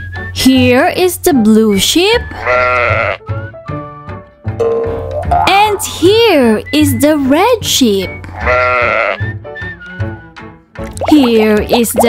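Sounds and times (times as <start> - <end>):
light children's music: 0.0 - 12.0
sheep bleating: 2.4 - 3.2, 8.3 - 9.2.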